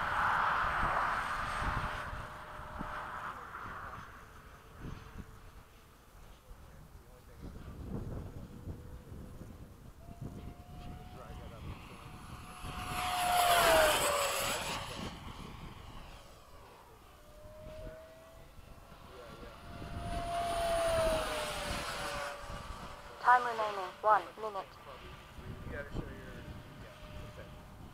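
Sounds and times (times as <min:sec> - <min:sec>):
model jet rushing whine passing: 0:00.0 - 0:27.9.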